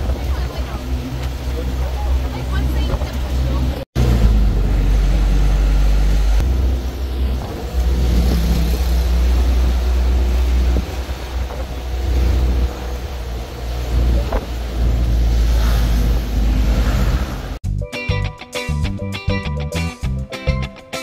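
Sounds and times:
vehicle rumble from on board: 0.0s - 17.6s
wind buffeting microphone: 0.0s - 17.6s.

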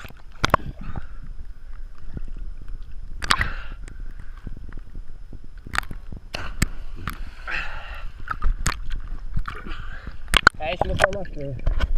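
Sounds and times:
steady low rumble: 0.0s - 10.9s
water sloshing and splashing: 0.0s - 11.9s.

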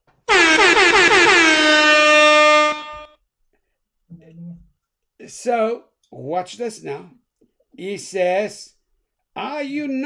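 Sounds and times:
air horn sound effect: 0.3s - 3.2s.

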